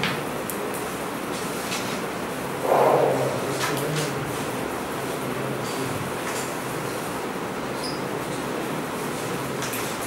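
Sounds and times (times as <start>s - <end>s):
steady room hum: 0.0s - 10.0s
short muffled sound: 2.6s - 4.2s.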